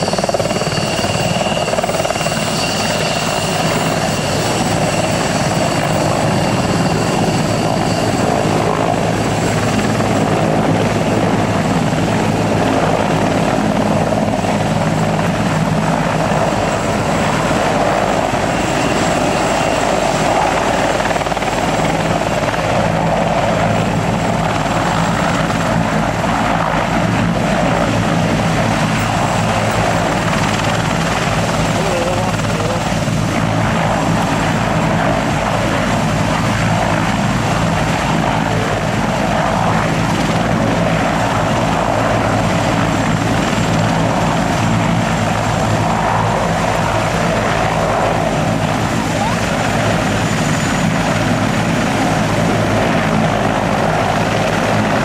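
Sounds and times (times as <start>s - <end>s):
helicopter rotor thrum: 0.0s - 55.0s
turbine engine whine: 0.0s - 55.0s.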